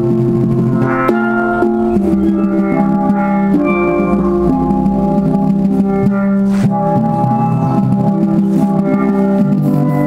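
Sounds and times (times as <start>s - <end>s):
steel pans playing a tune: 0.0s - 10.0s.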